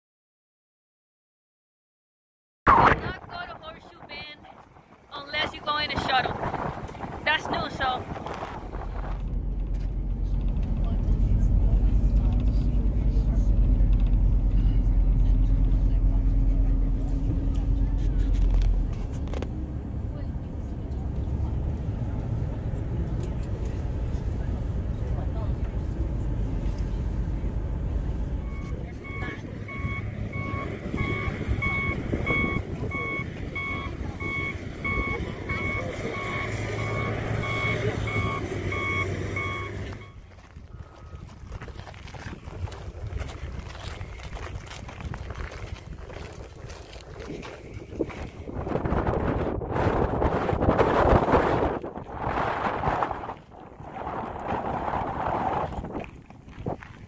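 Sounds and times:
wind buffeting microphone: 2.7 - 57.0
bus engine running: 3.3 - 57.0
reversing alarm beeping: 28.4 - 41.2.

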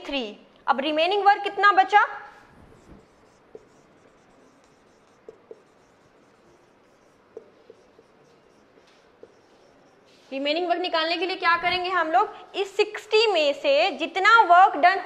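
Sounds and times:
marker squeaking on whiteboard: 2.2 - 12.7.

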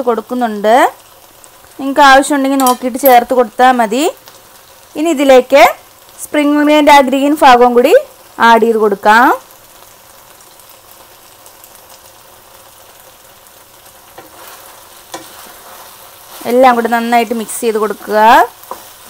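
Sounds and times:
frying hiss in a pan: 0.0 - 19.0
stirring in a pan: 9.9 - 19.0.

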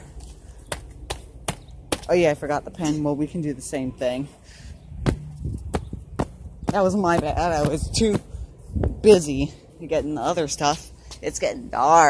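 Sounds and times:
footsteps on brick path: 0.0 - 11.5.

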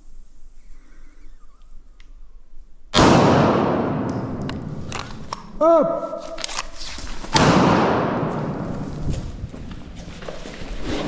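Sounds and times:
pistol shot echoing: 2.9 - 5.6, 7.3 - 8.8.

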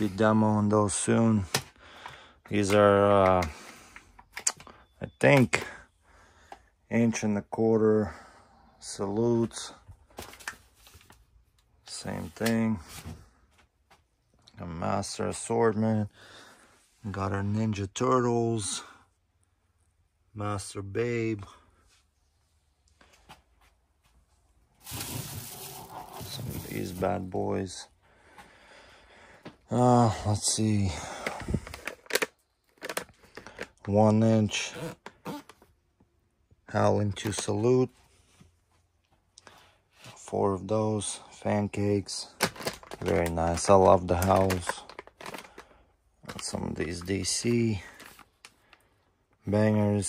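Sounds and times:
plastic packaging crinkling: 42.4 - 46.6.

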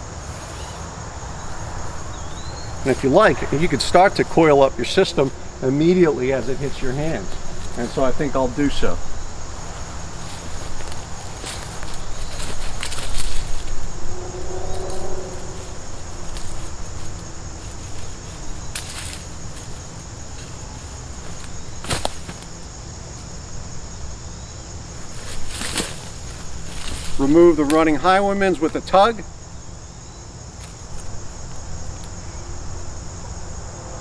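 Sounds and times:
insects chirring: 0.0 - 34.0.

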